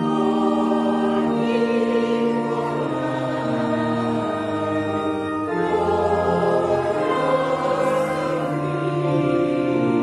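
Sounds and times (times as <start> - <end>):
choir and congregation singing: 0.0 - 10.0
organ: 0.0 - 10.0.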